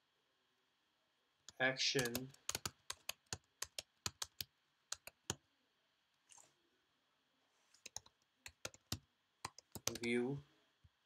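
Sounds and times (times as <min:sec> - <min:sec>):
keystrokes on computer keyboard: 0:02.0 - 0:05.4, 0:07.8 - 0:10.1.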